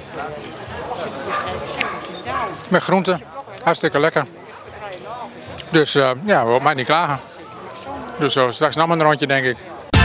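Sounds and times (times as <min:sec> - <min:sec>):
dog barking: 0:01.3 - 0:02.7.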